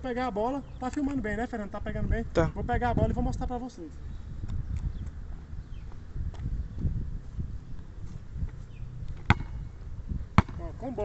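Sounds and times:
basketball bouncing on asphalt: 0:04.4 - 0:10.7.

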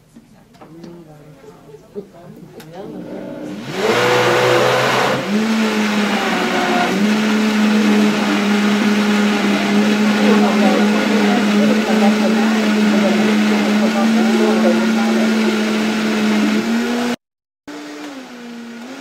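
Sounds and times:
blender motor running: 0:03.0 - 0:19.0
tamper pushing thick mix: 0:03.5 - 0:17.2.

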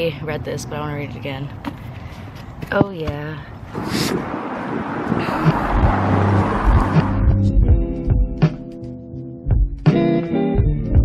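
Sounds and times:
car passing on street: 0:03.6 - 0:08.2
music with thudding beat: 0:05.5 - 0:11.0.

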